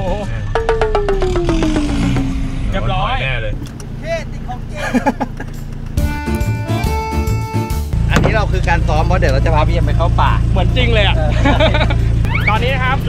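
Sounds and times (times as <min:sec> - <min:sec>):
steady musical tones: 0:00.0 - 0:03.5
engine drone inside cab: 0:00.0 - 0:06.6, 0:07.9 - 0:13.0
long falling tone: 0:00.5 - 0:03.2.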